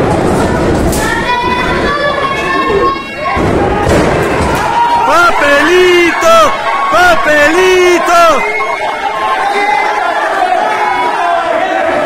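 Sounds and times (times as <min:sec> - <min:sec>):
crowd voices: 0:00.0 - 0:12.0
person shouting: 0:05.0 - 0:08.5.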